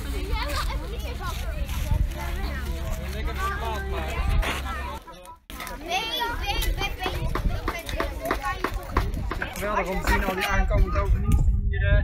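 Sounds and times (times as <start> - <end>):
children chattering: 0.0 - 11.3.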